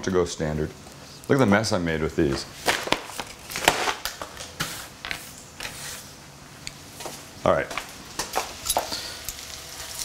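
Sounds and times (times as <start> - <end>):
bread sizzling in a pan: 8.4 - 10.0.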